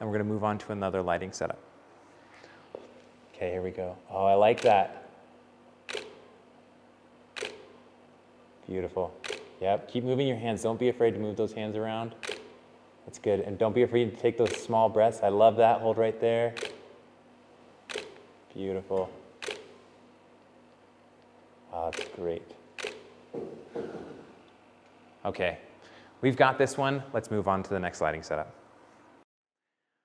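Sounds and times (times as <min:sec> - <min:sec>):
camera shutter click: 0:04.6 - 0:04.9, 0:05.9 - 0:06.3, 0:07.4 - 0:07.8, 0:09.2 - 0:09.6, 0:12.2 - 0:12.6, 0:14.4 - 0:14.7, 0:16.6 - 0:16.9, 0:17.9 - 0:18.3, 0:19.4 - 0:19.8, 0:21.9 - 0:22.2, 0:22.8 - 0:23.2.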